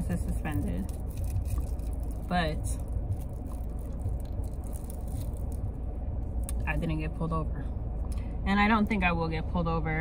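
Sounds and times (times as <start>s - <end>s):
low rumble of car cabin: 0.0s - 10.0s.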